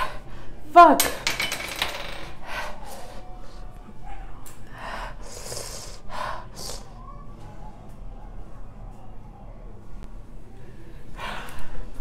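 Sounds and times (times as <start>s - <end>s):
woman breathing heavily and gasping: 11.0s - 12.0s.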